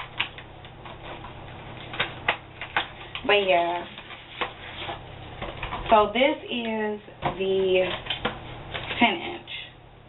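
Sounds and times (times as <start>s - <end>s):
cardboard packaging rustling: 0.0s - 6.6s.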